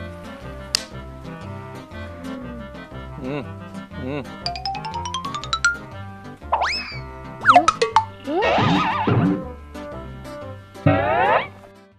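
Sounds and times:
playful background music: 0.0 - 11.9
springy boing swoops: 6.6 - 9.1.

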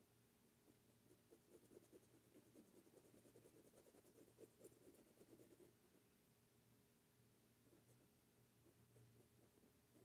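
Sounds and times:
faint steady hum: 0.0 - 10.0
paintbrush strokes on taut fabric: 0.6 - 6.2, 7.6 - 10.0.

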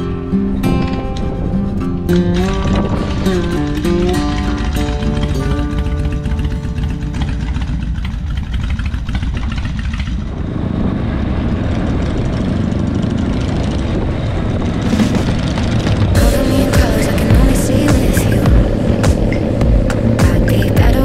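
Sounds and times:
motorcycle engine rumble: 0.0 - 21.0
road noise: 0.0 - 21.0
background music with held notes: 16.2 - 21.0.

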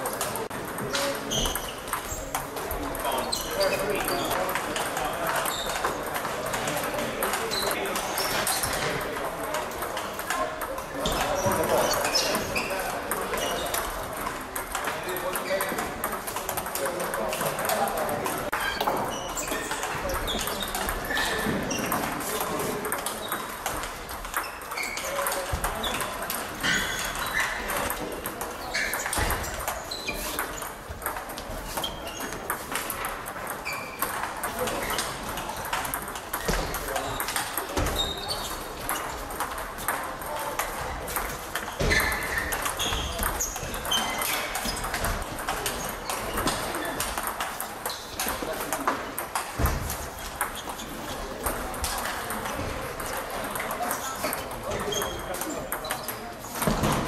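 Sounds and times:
murmur of voices: 0.0 - 57.0
table tennis balls knocking: 0.0 - 57.0.

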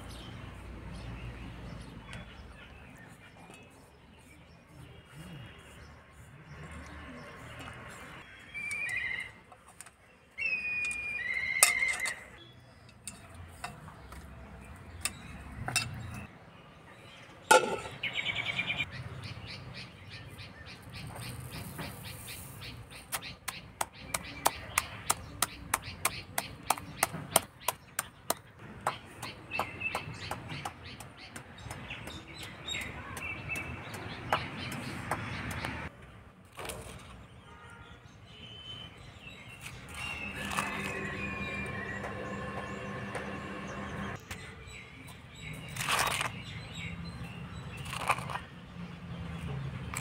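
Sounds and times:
birds chirping: 0.0 - 36.3, 37.0 - 50.0.

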